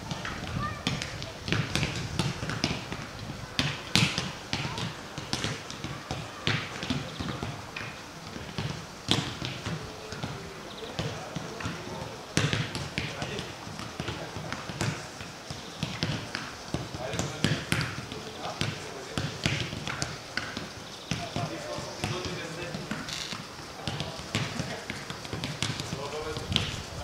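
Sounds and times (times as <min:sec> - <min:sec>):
footballs kicked thuds: 0:00.0 - 0:27.0
players' voices calling: 0:03.6 - 0:27.0.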